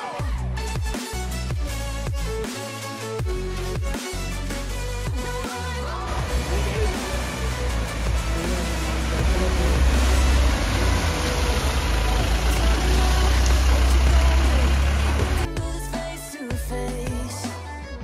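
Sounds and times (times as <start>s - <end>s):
background music: 0.0s - 18.0s
truck engine running: 6.1s - 15.5s
water washing off wheels: 6.3s - 15.5s.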